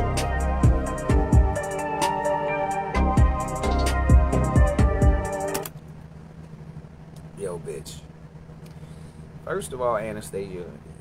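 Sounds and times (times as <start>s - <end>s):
beat with heavy bass and hi-hats: 0.0s - 5.7s
steady low hum: 0.0s - 11.0s.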